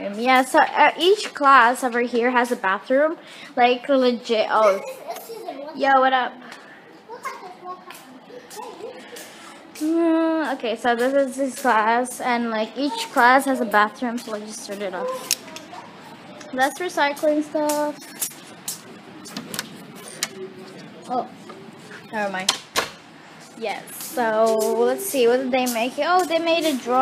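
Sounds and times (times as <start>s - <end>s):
children chattering: 0.0s - 22.4s, 23.7s - 27.0s.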